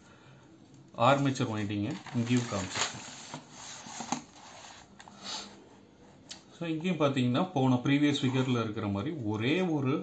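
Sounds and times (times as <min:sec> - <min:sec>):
paper page rustling: 0:01.0 - 0:05.1.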